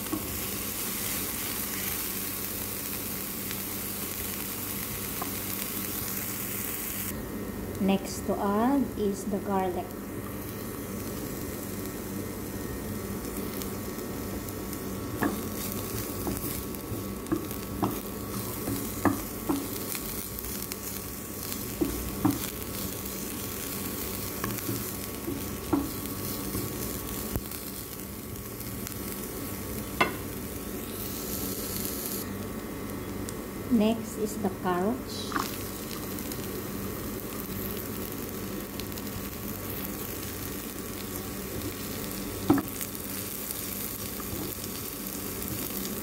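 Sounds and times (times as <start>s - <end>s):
onions sizzling in a pan: 0.0s - 46.0s.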